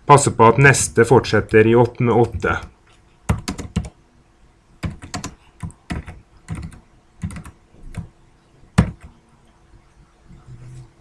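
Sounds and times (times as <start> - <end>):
computer keyboard typing: 1.4 - 2.7, 3.3 - 4.0, 4.8 - 8.1, 8.8 - 9.2.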